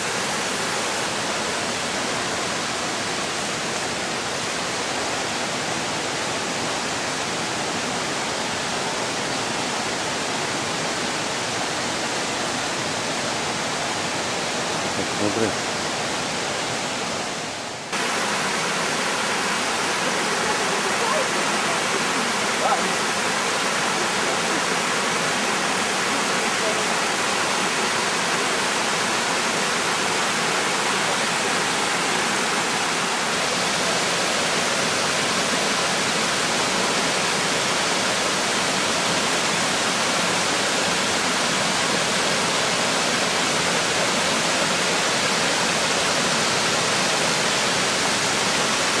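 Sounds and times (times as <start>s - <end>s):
waterfall rushing: 0.0s - 49.0s.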